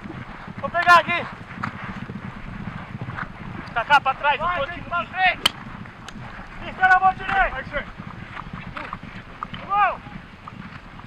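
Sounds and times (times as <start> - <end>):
hoofbeats galloping on grass: 0.0 - 11.0.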